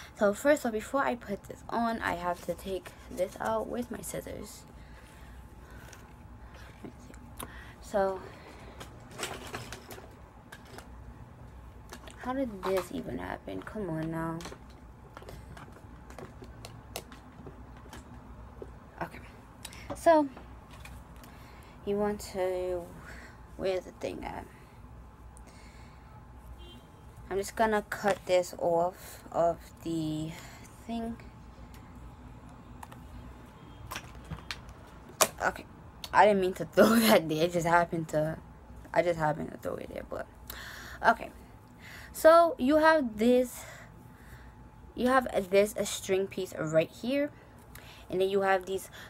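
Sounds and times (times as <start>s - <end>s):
handling clicks and rustles: 8.6s - 18.8s.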